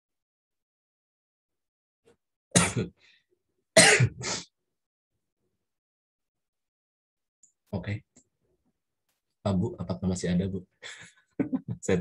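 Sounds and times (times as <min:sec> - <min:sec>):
person coughing: 0:02.6 - 0:02.9, 0:03.8 - 0:04.5
person laughing: 0:11.4 - 0:12.0.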